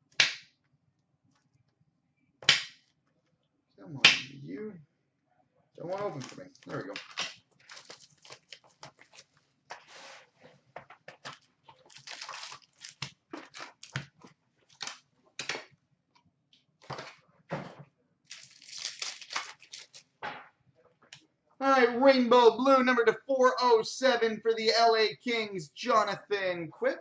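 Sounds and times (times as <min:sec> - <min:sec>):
pack wrapper tearing: 0:05.9 - 0:09.3, 0:11.2 - 0:14.1, 0:14.7 - 0:15.0, 0:18.3 - 0:20.2
foil packs rustling: 0:05.9 - 0:15.1, 0:18.3 - 0:20.2.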